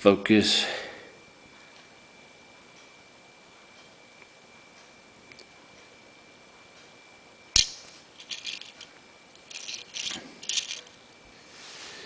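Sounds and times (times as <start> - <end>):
toy cars clicking and rattling: 7.6 - 10.9.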